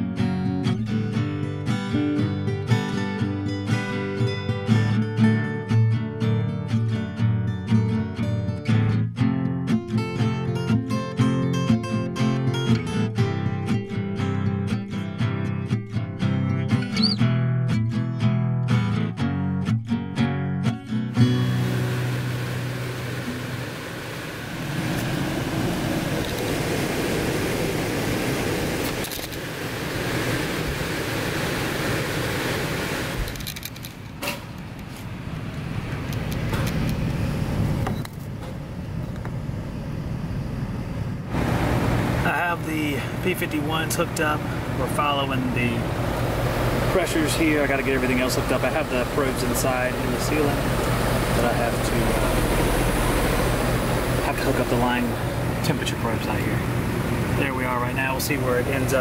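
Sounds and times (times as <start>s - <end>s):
strummed acoustic guitar: 0.0s - 26.4s, 41.3s - 59.0s
air conditioning blower rushing: 21.2s - 59.0s.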